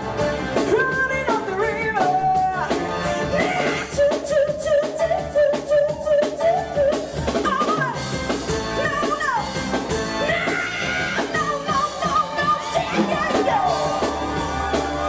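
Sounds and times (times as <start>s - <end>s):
live rock band: 0.0s - 15.0s
woman singing into microphone: 0.7s - 8.1s.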